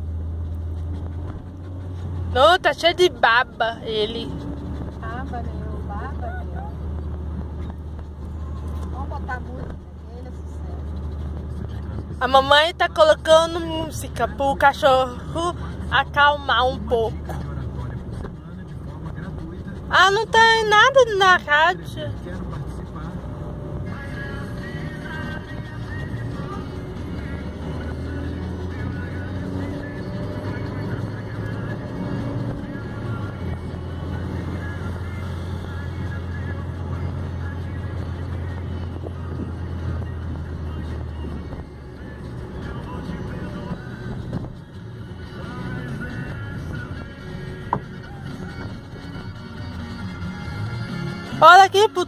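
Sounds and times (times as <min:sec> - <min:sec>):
engine and road noise drone: 0:00.0 - 0:52.0
car radio music: 0:02.3 - 0:52.0.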